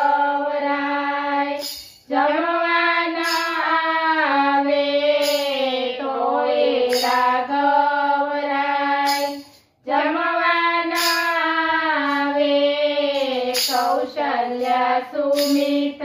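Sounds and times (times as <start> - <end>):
women singing together: 0.0 - 16.0.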